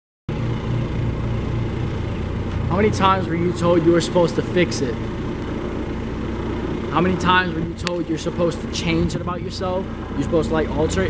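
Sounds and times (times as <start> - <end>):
low outdoor rumble: 0.3 - 11.0.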